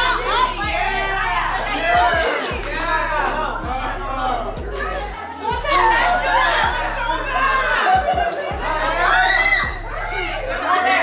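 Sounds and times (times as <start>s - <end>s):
crowd talking and shouting: 0.0s - 11.0s
music with bass beat: 0.0s - 11.0s.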